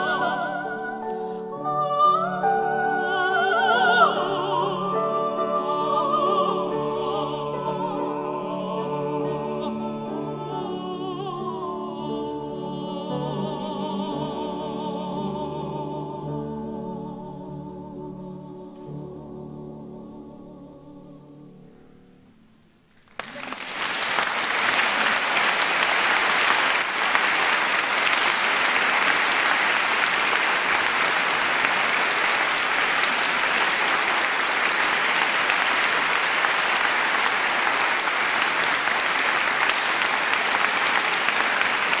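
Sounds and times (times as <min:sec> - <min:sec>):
audience applauding: 0:23.0 - 0:42.0.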